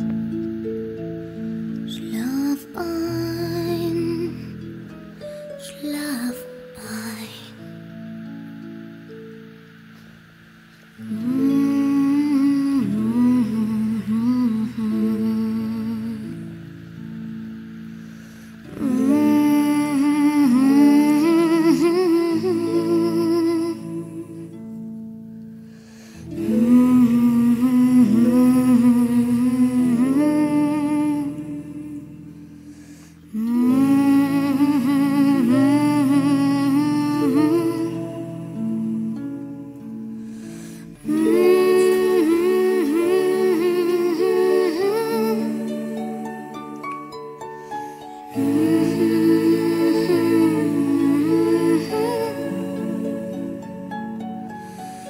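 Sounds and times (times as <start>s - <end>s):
person humming a lullaby: 0.0s - 55.0s
soft instrumental accompaniment: 0.0s - 55.0s.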